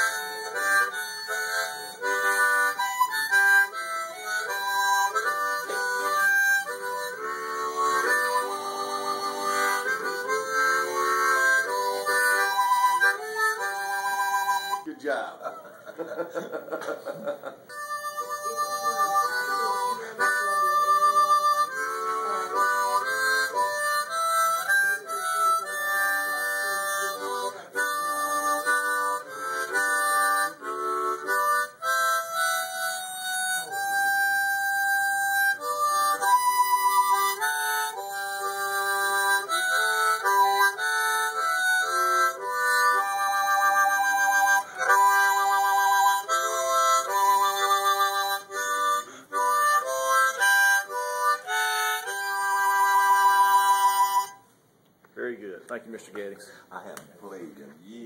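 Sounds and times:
harmonica playing: 0.0 - 15.7, 17.2 - 54.7.

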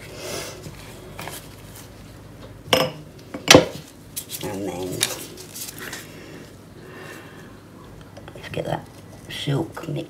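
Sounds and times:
tableware clink: 2.7 - 3.7.

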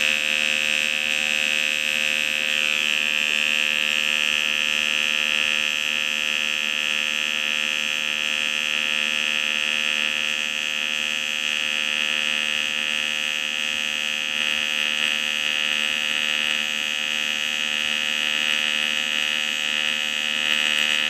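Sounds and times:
welding arc buzz: 0.0 - 21.0.

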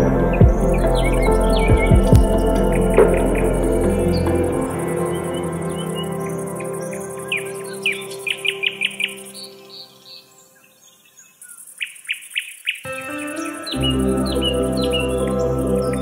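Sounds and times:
bass: 0.0 - 6.2, 13.8 - 16.0
music track: 0.0 - 10.0, 12.9 - 16.0
small songbirds chirping: 0.0 - 16.0.

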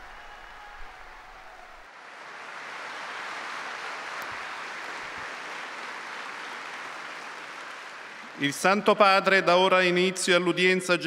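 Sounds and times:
large crowd applauding: 0.0 - 9.4.

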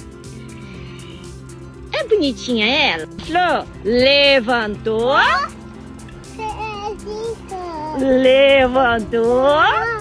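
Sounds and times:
background music with low tones: 0.0 - 10.0
small child's high voice: 6.3 - 8.0, 9.8 - 10.0.

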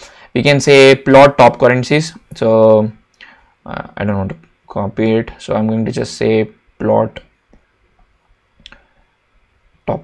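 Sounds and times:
person speaking: 0.0 - 7.4.

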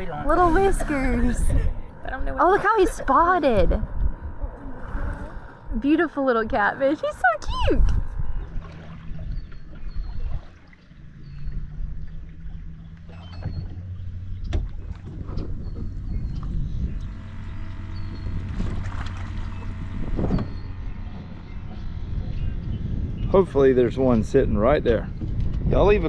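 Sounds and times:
electric trolling motor humming: 0.0 - 26.0.

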